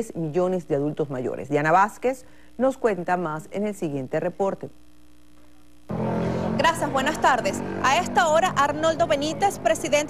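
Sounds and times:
woman speaking: 0.0s - 4.8s, 6.6s - 10.0s
faint steady hum: 0.0s - 10.0s
low droning tones: 5.2s - 10.0s.

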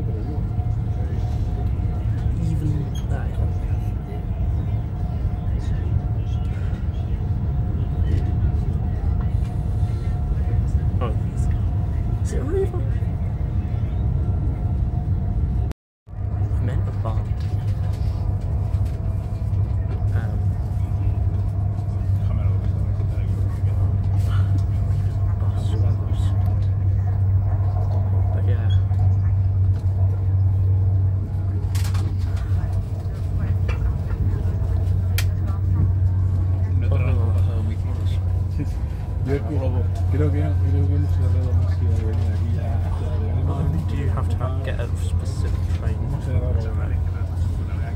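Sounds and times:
faint voices: 0.0s - 47.9s
vehicle cabin rumble: 0.0s - 47.9s.

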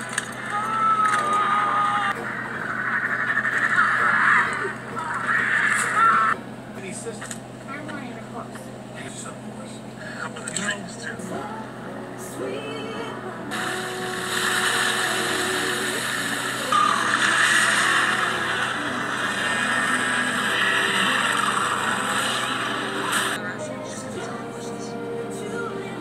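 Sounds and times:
film soundtrack music: 0.0s - 6.9s, 10.1s - 26.0s
rushing noise effect: 13.5s - 23.4s.

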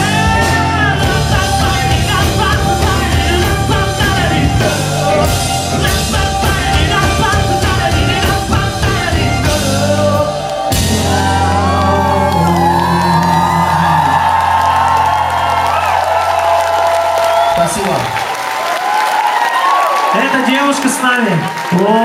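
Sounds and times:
crowd cheering and whooping: 0.0s - 8.5s, 9.2s - 22.0s
rock band closing chord ringing: 0.0s - 17.2s.

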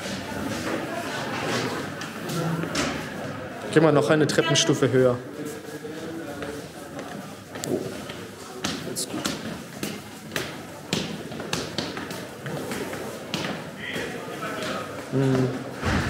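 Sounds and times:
murmur of voices: 0.0s - 16.0s
footsteps on stone stairs: 6.4s - 13.7s.

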